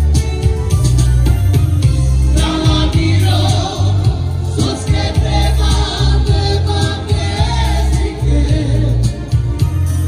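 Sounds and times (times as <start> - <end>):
electronic keyboard: 0.0 - 10.0
heavy pulsing bass beat: 0.0 - 10.0
male vocalists singing: 2.2 - 9.6.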